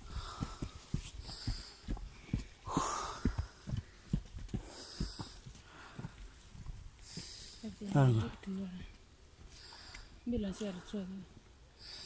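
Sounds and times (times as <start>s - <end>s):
person breathing hard: 0.0s - 7.7s, 11.7s - 12.0s
boots on earth and rock: 0.0s - 8.2s.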